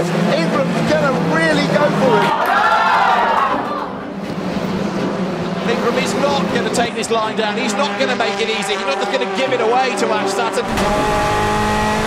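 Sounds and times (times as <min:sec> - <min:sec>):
race broadcast commentary: 0:00.0 - 0:02.4, 0:05.3 - 0:11.7
racing car engines droning: 0:00.0 - 0:12.0.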